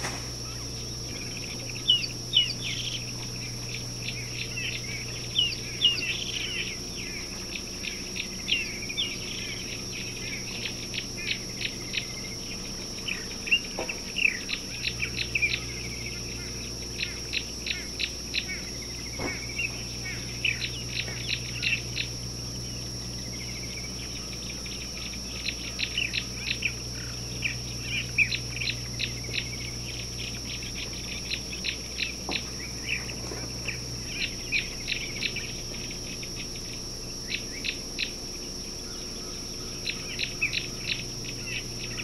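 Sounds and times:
birds chirping: 0:00.0 - 0:42.0
high-pitched insect trill: 0:00.0 - 0:42.0
steady high-pitched drone: 0:00.0 - 0:42.0.

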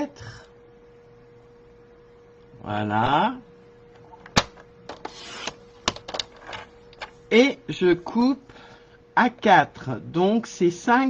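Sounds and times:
blade scraping through paper: 0:05.0 - 0:05.6.

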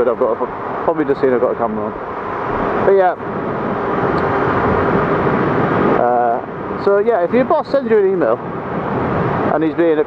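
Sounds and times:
wind and road noise: 0:00.0 - 0:10.0.

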